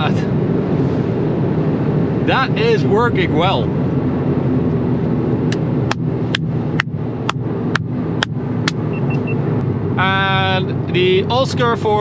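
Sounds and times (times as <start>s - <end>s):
car engine drone in cabin: 0.0s - 12.0s
short high beeps: 8.9s - 9.4s.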